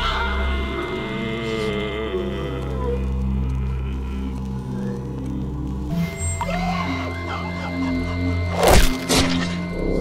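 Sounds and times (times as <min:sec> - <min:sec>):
background music drone: 0:00.0 - 0:10.0.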